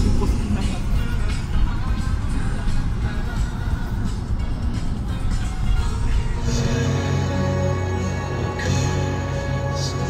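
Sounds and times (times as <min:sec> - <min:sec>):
car road and engine noise: 0:00.0 - 0:10.0
music playing: 0:00.0 - 0:10.0.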